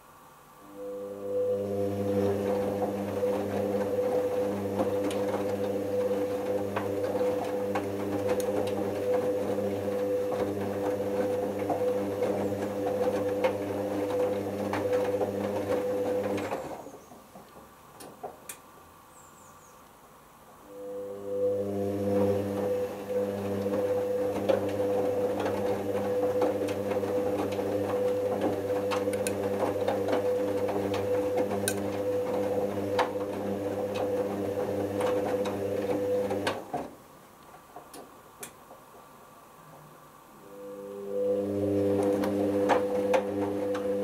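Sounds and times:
washing machine motor hum: 0:00.6 - 0:17.4, 0:20.6 - 0:37.2, 0:40.4 - 0:44.0
wet laundry tumbling: 0:02.1 - 0:17.6, 0:22.6 - 0:37.0.

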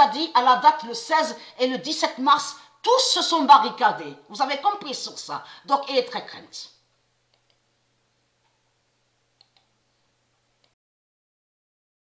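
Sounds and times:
faint computer mouse clicks: 0:07.3 - 0:07.6, 0:09.4 - 0:09.7.

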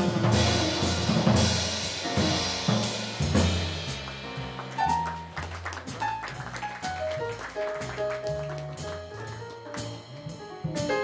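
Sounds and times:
drum and cymbal strikes: 0:00.0 - 0:05.4, 0:08.8 - 0:11.0.

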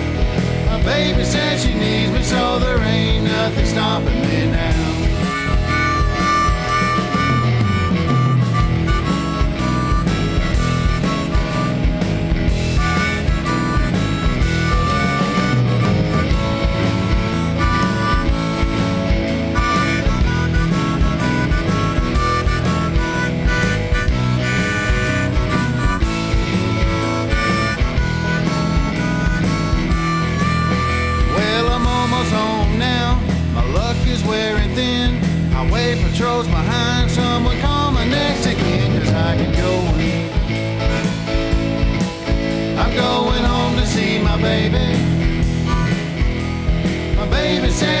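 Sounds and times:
blues band backing: 0:00.0 - 0:48.0
harmonica solo: 0:00.0 - 0:48.0.

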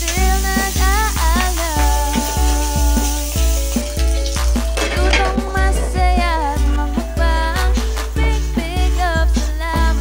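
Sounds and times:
pork sizzling in a wok: 0:00.0 - 0:05.4
background music with steady beat: 0:00.0 - 0:10.0.

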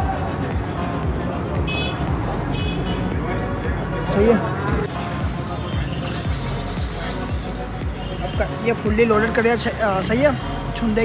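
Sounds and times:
background music: 0:00.0 - 0:11.0
road traffic noise: 0:00.0 - 0:11.0.

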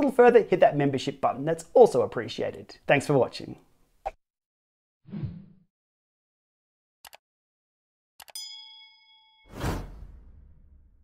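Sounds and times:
bell-like ding: 0:08.4 - 0:09.6.

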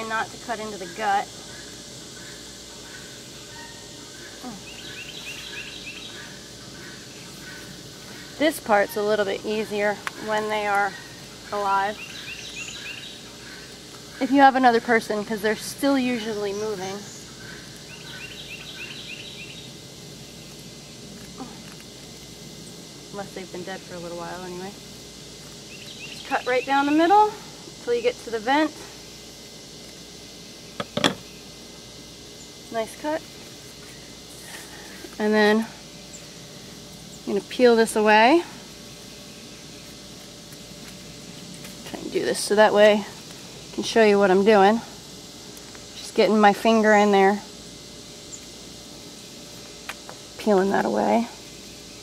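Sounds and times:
outdoor background noise: 0:00.0 - 0:52.0
bird chirping rapidly: 0:02.9 - 0:08.3, 0:10.9 - 0:14.5, 0:16.1 - 0:19.8, 0:25.7 - 0:27.2.

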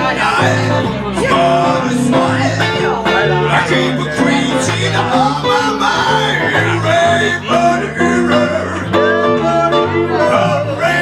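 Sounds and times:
blues lead guitar: 0:00.0 - 0:11.0.

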